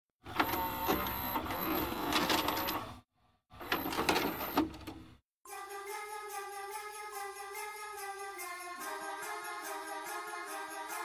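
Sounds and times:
machine mechanism whirring and clicking: 0:00.3 - 0:03.0, 0:03.6 - 0:05.1.

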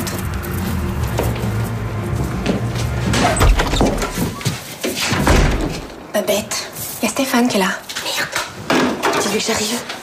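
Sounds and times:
door slamming shut: 0:03.1 - 0:04.4, 0:05.0 - 0:06.0.

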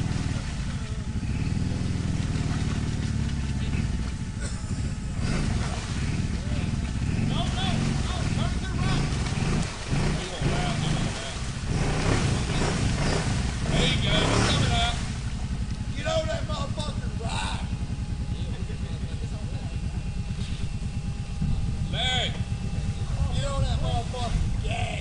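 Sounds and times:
atv engine running: 0:00.0 - 0:25.0.

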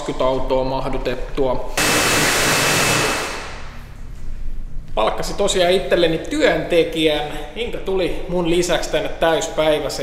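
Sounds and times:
pressure washer spraying: 0:01.8 - 0:03.8
low hum: 0:01.8 - 0:05.0.

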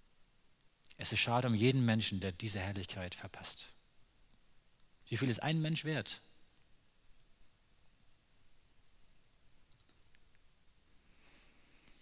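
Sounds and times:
faint small clicks: 0:06.6 - 0:10.5, 0:11.8 - 0:12.0.

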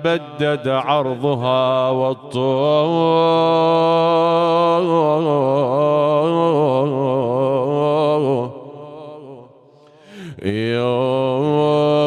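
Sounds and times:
man chanting a lament: 0:00.0 - 0:09.5, 0:10.1 - 0:12.0.

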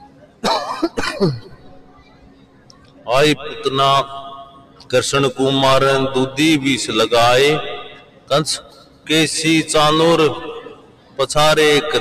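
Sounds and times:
man coughing and clearing throat: 0:00.4 - 0:01.5.

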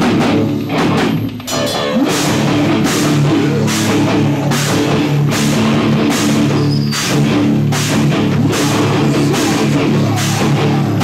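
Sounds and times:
drum kit with cymbal crashes: 0:00.0 - 0:11.0
electric guitar: 0:00.0 - 0:11.0.

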